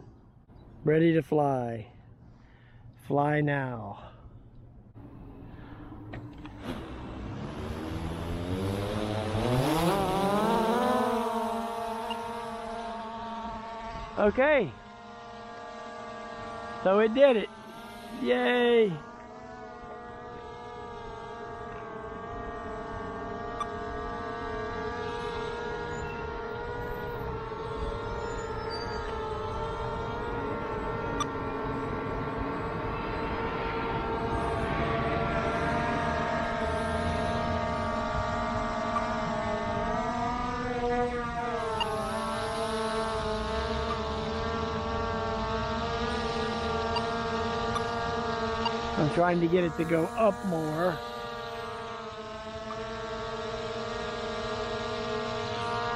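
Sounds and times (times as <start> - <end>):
drone propellers whining: 4.3 - 55.9.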